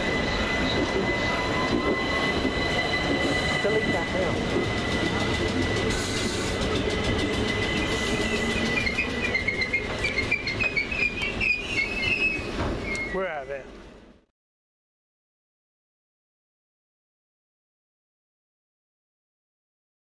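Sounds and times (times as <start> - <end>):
train brakes squealing: 0.0 - 13.4
electric train whine: 0.0 - 14.1
train rolling rumble: 0.0 - 14.2.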